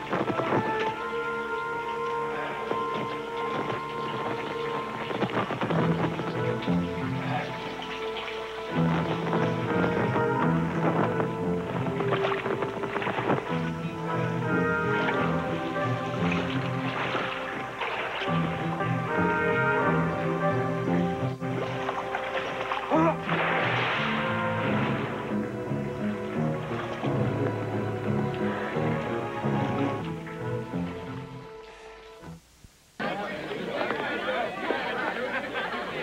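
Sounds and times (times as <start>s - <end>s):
film score music: 0.0s - 32.6s
crowd chatter: 33.0s - 36.0s.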